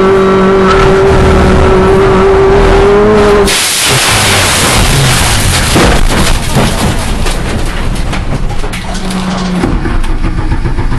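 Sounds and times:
rough race car engine noise: 0.0s - 10.9s
scattered knocks: 5.5s - 10.9s.

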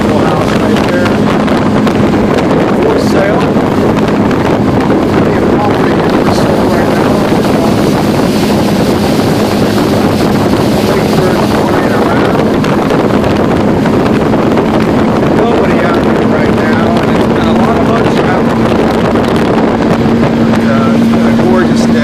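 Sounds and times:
motorboat engine droning: 0.0s - 22.0s
wind buffeting microphone: 0.0s - 22.0s.

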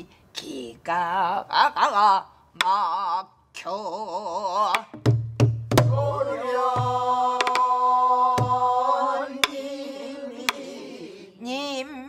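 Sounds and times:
barrel drum struck with stick: 5.0s - 6.0s, 6.7s - 7.7s
voices singing held note: 5.9s - 11.5s.

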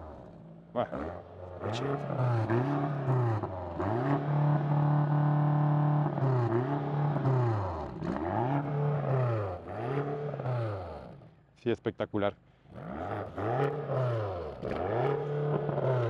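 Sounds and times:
car engine revving: 0.0s - 11.4s, 12.6s - 16.0s.

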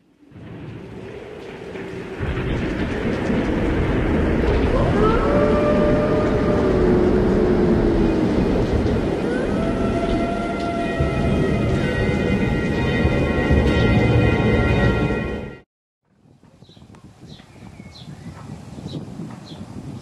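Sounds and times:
sliding tones: 0.1s - 15.4s
loud rumbling roar: 0.3s - 15.5s.

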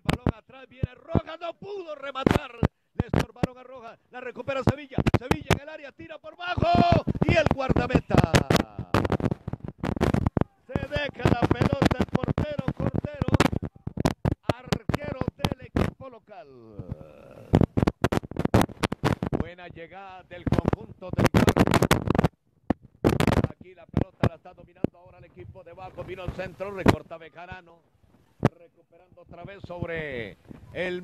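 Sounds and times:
man talking: 0.0s - 9.1s, 10.5s - 13.7s, 14.4s - 17.6s, 19.4s - 21.6s, 23.4s - 27.8s, 28.4s - 31.0s
crackling clicks: 0.0s - 16.2s, 16.8s - 30.9s.

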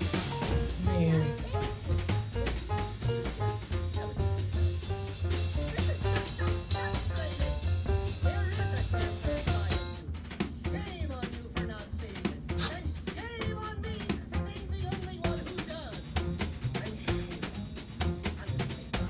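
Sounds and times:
drum kit beat: 0.0s - 19.0s
jazzy cartoon music: 0.0s - 19.0s.

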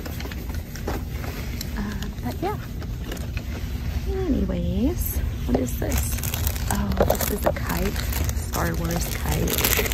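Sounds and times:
low store background rumble: 0.0s - 9.9s.

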